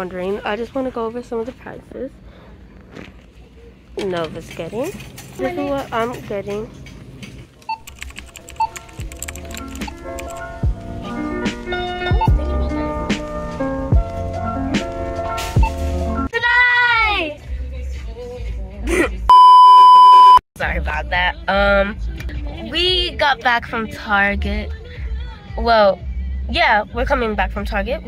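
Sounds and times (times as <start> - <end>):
people talking: 0.0 - 2.1, 4.0 - 6.7, 20.6 - 22.0
keyboard typing: 7.6 - 10.6
censor bleep tone: 19.3 - 20.4
short electronic beeps: 19.3 - 20.4.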